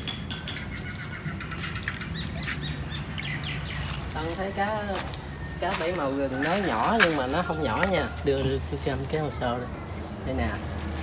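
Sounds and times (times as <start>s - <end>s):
birds chirping: 0.0s - 10.6s.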